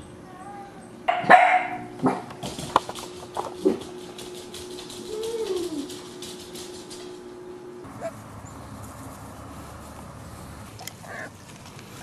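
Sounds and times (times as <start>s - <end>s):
puppy barking: 1.1s - 2.3s.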